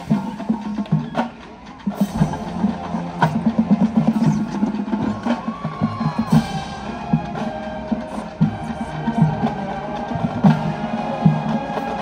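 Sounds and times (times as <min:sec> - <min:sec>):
drumline strokes: 0:00.0 - 0:12.0
marching band playing: 0:00.0 - 0:12.0.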